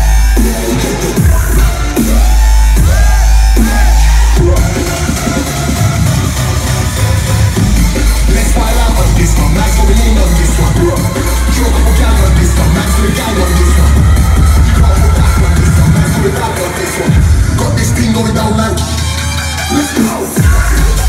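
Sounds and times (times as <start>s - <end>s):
loud dubstep music: 0.0s - 21.0s.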